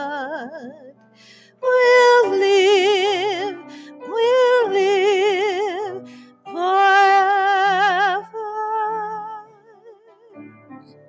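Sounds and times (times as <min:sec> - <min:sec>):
woman singing a hymn: 0:00.0 - 0:10.5
grand piano: 0:00.0 - 0:11.0.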